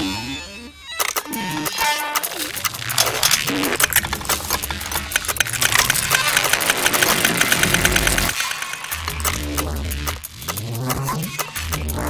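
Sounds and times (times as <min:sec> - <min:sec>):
rapid electronic clicks and buzzing: 0:01.2 - 0:10.9.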